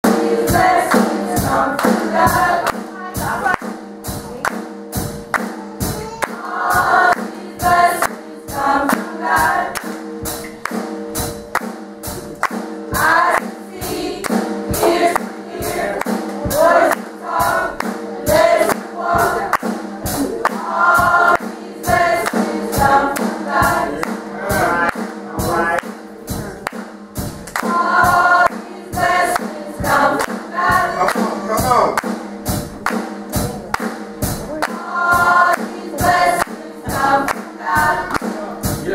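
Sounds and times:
gospel choir singing: 0:00.0 - 0:03.8, 0:04.4 - 0:38.9.

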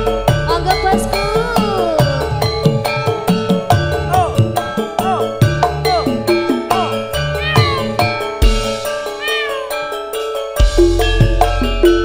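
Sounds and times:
keyboard: 0:00.0 - 0:12.0
hand drum: 0:00.3 - 0:08.9, 0:10.6 - 0:12.0.

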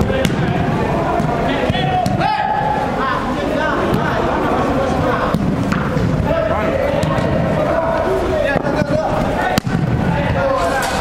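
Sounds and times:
football being kicked: 0:00.0 - 0:02.3, 0:08.6 - 0:10.4
players calling out in a hall: 0:00.0 - 0:11.0.

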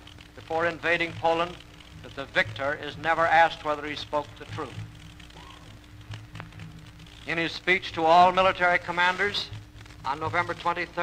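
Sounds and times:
low recording hum: 0:00.0 - 0:11.0
faint clicks: 0:03.6 - 0:07.7.

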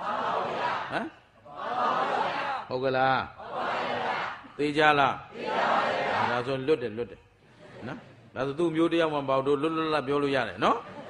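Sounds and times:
congregation responding in unison: 0:00.0 - 0:06.7.

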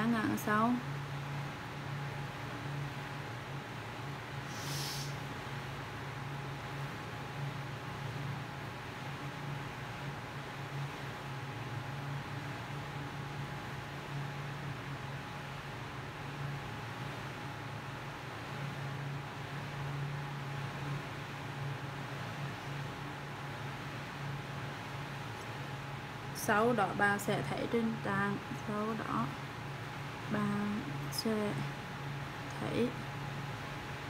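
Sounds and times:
background hiss: 0:04.4 - 0:05.5.

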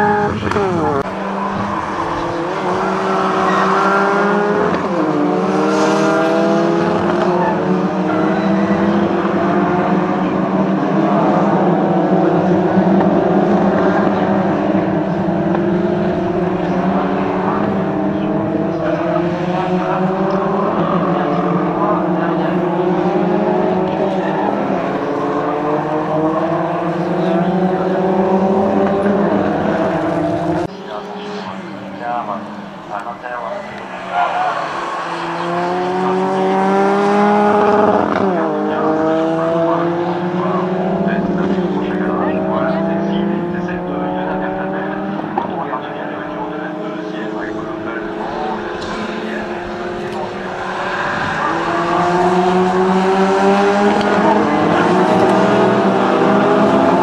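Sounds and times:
race cars driving past: 0:00.0 - 0:57.0.

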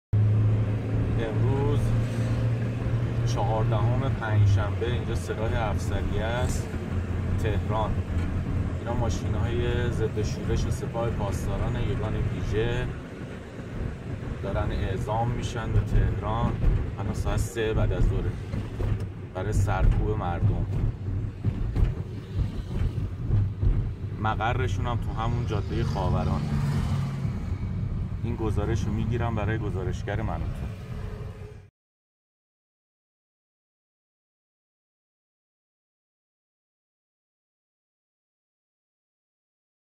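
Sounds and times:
car interior road drone: 0:00.2 - 0:31.7.

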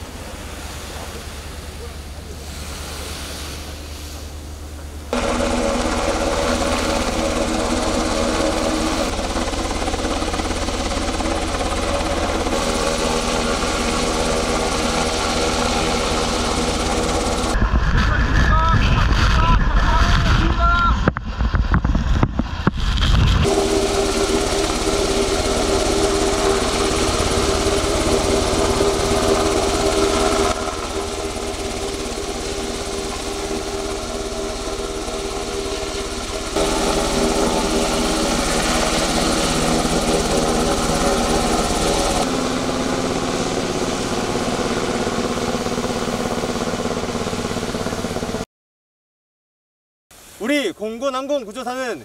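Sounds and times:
helicopter engine and rotor droning: 0:00.0 - 0:03.0, 0:03.6 - 0:48.4.

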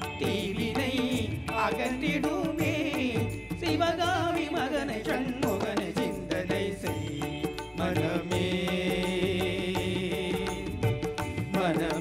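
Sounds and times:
steady percussion beat: 0:00.0 - 0:12.0.

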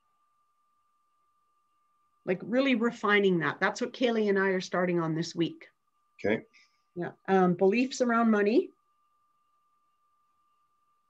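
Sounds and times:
faint high-pitched tone: 0:00.0 - 0:11.0.

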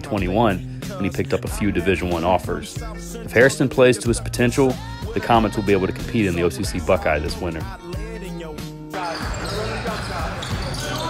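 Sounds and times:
background music: 0:00.0 - 0:11.0
players' voices: 0:00.0 - 0:11.0.

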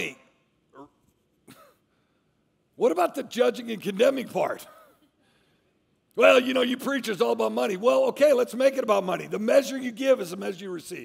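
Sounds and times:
man speaking: 0:00.0 - 0:01.1, 0:02.7 - 0:05.0, 0:06.1 - 0:11.0.

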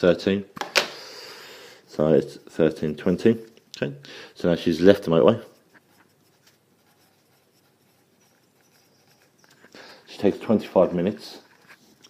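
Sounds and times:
pencil scratching on paper: 0:04.8 - 0:10.8.

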